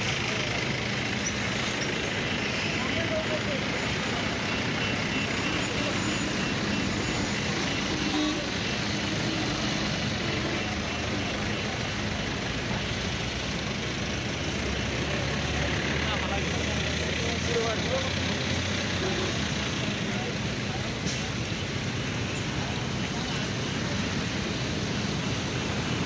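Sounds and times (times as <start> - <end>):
fire hoses spraying water: 0.0 - 26.0
vehicle engine idling: 0.0 - 26.0.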